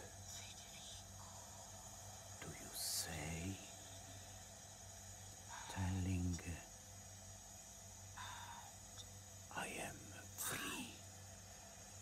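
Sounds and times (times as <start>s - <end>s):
person whispering: 0.0s - 1.6s, 2.4s - 4.0s, 5.5s - 6.6s, 9.5s - 11.0s
low electrical hum: 0.0s - 12.0s
breath: 5.5s - 5.8s, 8.2s - 8.7s.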